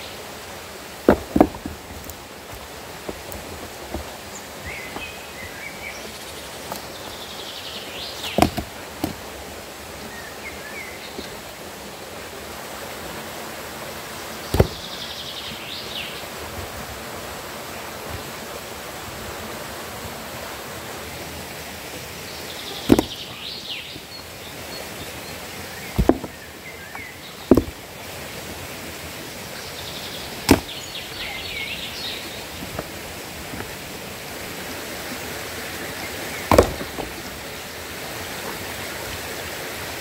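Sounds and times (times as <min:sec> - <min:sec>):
steady outdoor hiss: 0:00.0 - 0:40.0
stone-on-stone knocks: 0:01.1 - 0:01.8, 0:14.5 - 0:14.8, 0:22.9 - 0:23.2, 0:26.0 - 0:26.3, 0:27.5 - 0:27.8, 0:36.5 - 0:37.1.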